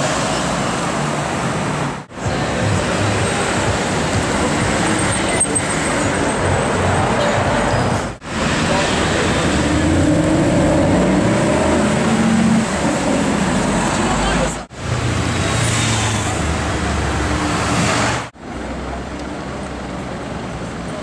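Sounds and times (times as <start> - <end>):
street traffic noise: 0.0 - 21.0.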